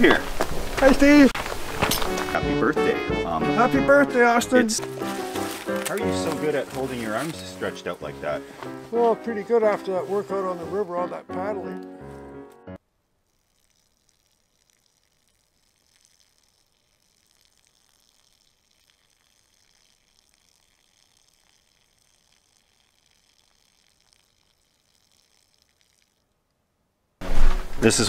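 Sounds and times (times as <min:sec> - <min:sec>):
faint steady hiss: 0:12.8 - 0:28.0.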